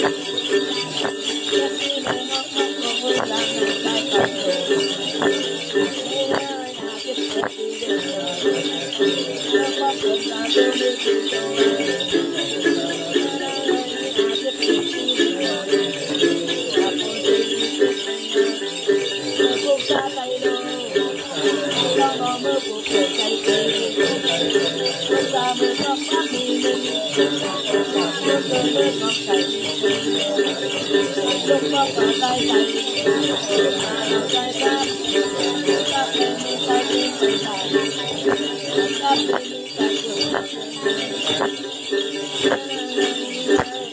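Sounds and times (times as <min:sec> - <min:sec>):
jingle bells shaken: 0:00.0 - 0:43.9
woman chanting: 0:00.0 - 0:43.9.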